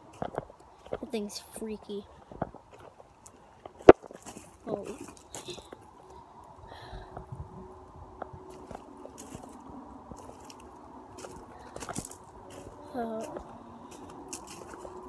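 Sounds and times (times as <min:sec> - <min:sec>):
footsteps crunching on gravel: 0:02.2 - 0:05.8, 0:08.5 - 0:15.0.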